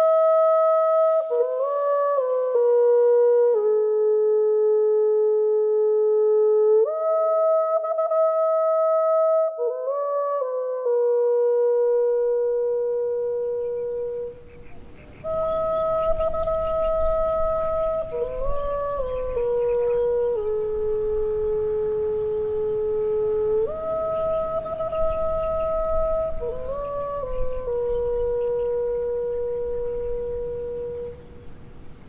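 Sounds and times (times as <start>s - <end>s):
slow woodwind melody: 0.0s - 32.0s.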